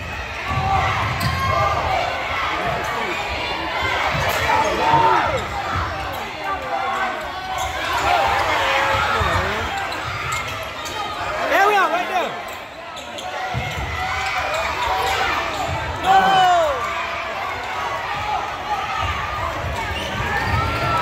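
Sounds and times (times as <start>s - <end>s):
players and spectators shouting: 0.0s - 21.0s.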